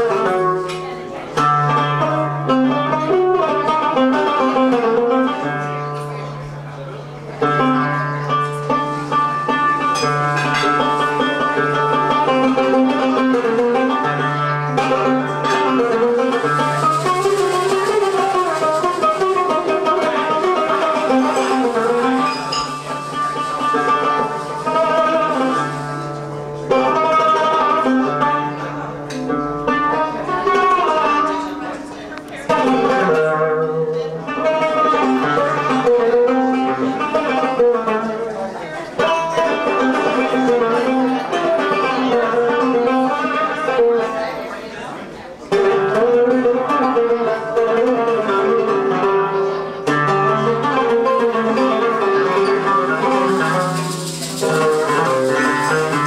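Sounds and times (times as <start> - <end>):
plucked oud: 0.0 - 56.0
darbuka drumming: 8.7 - 28.4, 49.9 - 56.0.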